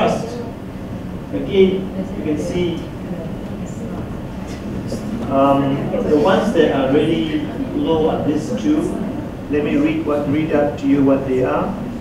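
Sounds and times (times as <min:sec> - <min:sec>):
faint murmur: 0:00.0 - 0:12.0
low room rumble: 0:00.0 - 0:12.0.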